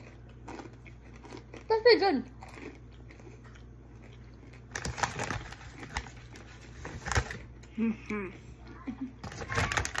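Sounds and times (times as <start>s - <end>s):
crisp chewing crunches: 0.0s - 7.7s
low steady hum: 0.0s - 10.0s.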